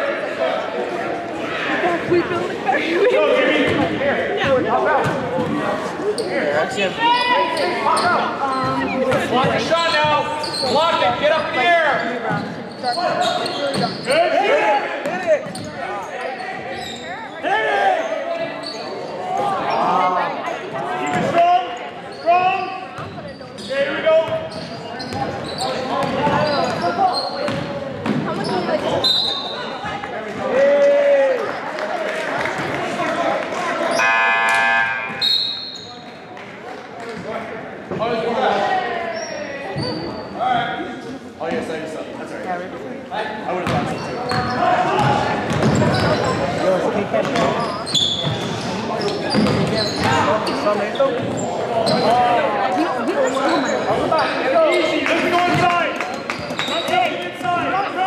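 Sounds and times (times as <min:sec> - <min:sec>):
voices and chatter in a gym: 0:00.0 - 0:58.0
basketball bouncing on court: 0:26.0 - 0:26.9, 0:27.5 - 0:28.5, 0:43.6 - 0:46.3, 0:49.3 - 0:50.3.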